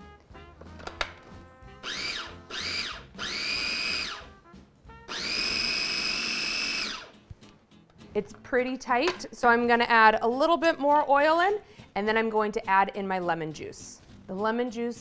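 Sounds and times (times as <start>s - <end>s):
food processor whining: 1.8s - 4.3s, 5.1s - 7.1s.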